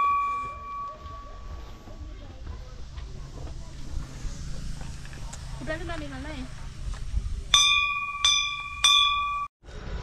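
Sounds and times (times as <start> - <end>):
temple bell ringing: 0.0 - 1.6, 7.5 - 9.5.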